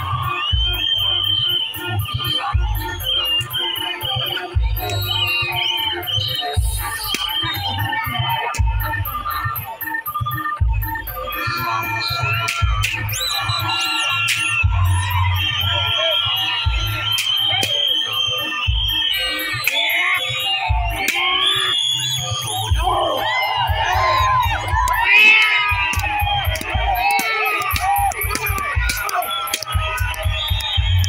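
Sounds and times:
loud dance troupe music: 0:00.0 - 0:09.5, 0:10.6 - 0:31.0
crowd shouting and screaming: 0:00.0 - 0:31.0.

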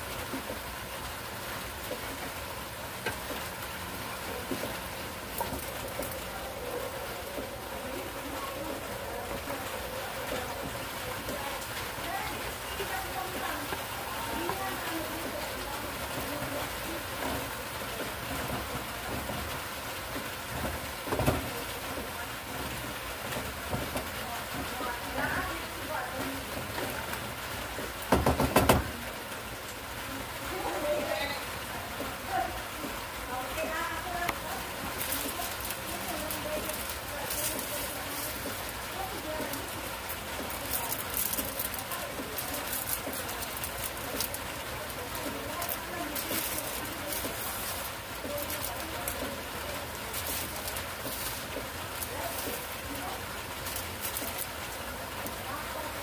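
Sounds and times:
food sizzling in a frying pan: 0:00.0 - 0:56.0
knock: 0:28.1 - 0:28.9.

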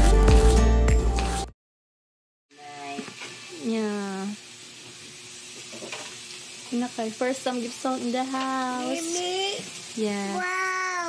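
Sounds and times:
meat sizzling on grill pan: 0:02.6 - 0:11.0.

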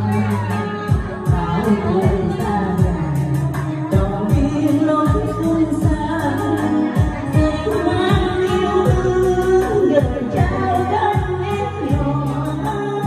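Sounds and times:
amplified music with drum beat: 0:00.0 - 0:13.0
woman singing into a microphone: 0:00.0 - 0:13.0.

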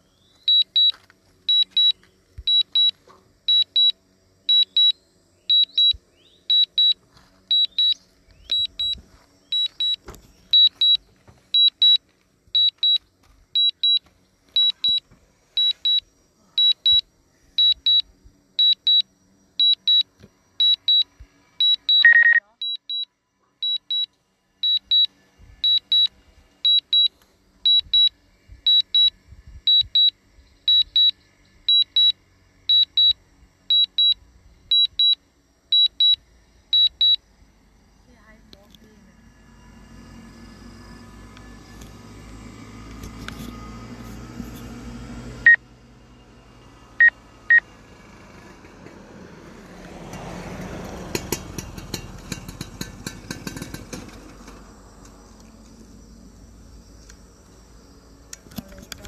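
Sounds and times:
electronic alarm double beeps: 0:00.5 - 0:12.0, 0:12.6 - 0:13.0, 0:13.6 - 0:14.0, 0:14.6 - 0:15.0, 0:15.6 - 0:28.1, 0:28.7 - 0:37.2
lower tone sliding downward: 0:38.8 - 0:47.7.

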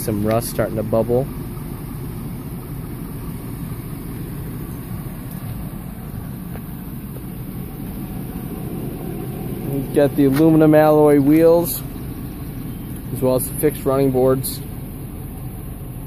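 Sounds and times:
engine idling: 0:00.0 - 0:16.0.

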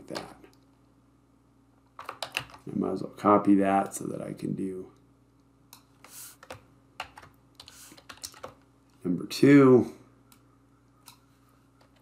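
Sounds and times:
computer keyboard keystrokes: 0:02.0 - 0:02.6, 0:05.8 - 0:08.6.

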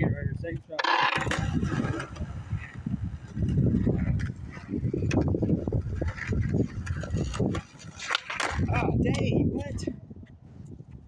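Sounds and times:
wind rumble on microphone: 0:00.0 - 0:11.0
skateboard rolling on concrete: 0:00.5 - 0:09.6.

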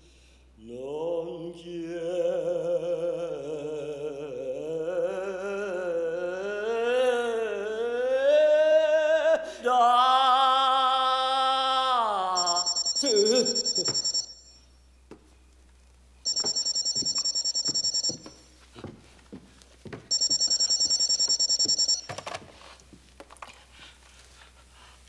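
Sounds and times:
telephone ringing electronic trill: 0:12.4 - 0:14.6, 0:16.3 - 0:18.4, 0:20.1 - 0:22.2.

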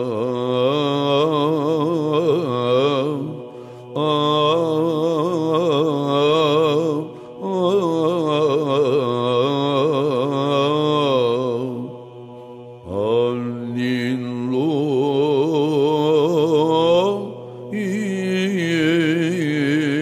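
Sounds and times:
low drone: 0:00.0 - 0:20.0
man singing melismatic chant: 0:00.0 - 0:20.0.

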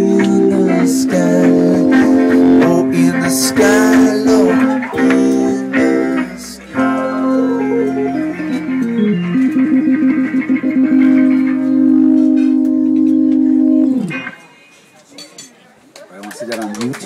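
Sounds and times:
acoustic guitar band playing: 0:00.0 - 0:14.6.

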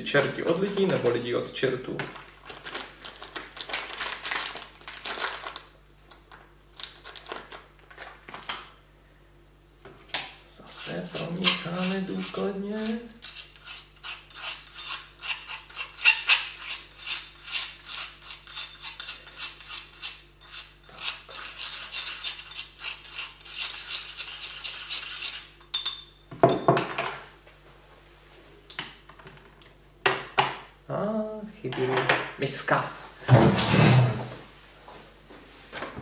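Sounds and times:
spatula scraping powder in bowl: 0:10.7 - 0:25.5.

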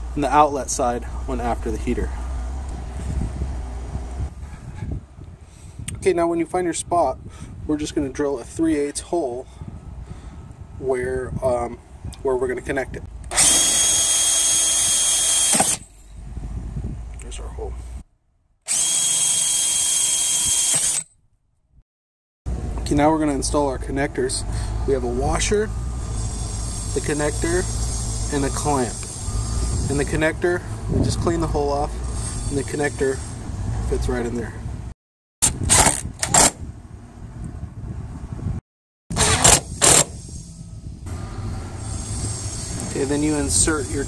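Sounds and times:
power drill whining: 0:13.3 - 0:15.8, 0:18.7 - 0:21.0.

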